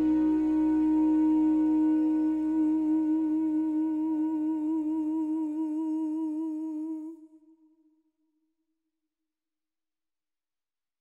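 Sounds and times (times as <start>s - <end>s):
soft orchestral chord: 0.0s - 3.3s
man singing with vibrato: 0.0s - 7.4s.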